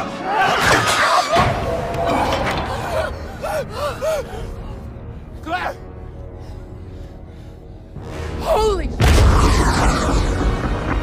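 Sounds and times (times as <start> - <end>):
low film score rumble: 1.4 - 11.0.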